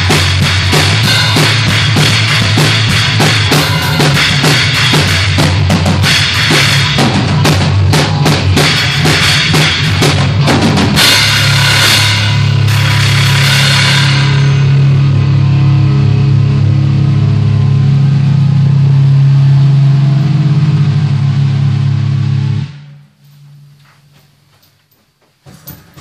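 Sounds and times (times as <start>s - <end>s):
rock song: 0.0s - 16.3s
cymbal crashes: 0.0s - 23.8s.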